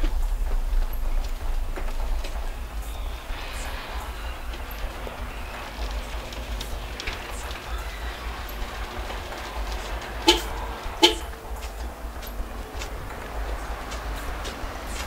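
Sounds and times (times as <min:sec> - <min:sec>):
garage door rolling open: 0:00.0 - 0:15.0.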